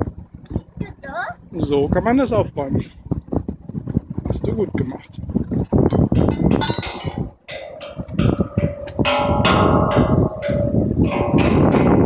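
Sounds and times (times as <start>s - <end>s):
steel tongue drum notes ringing: 5.9s - 8.0s.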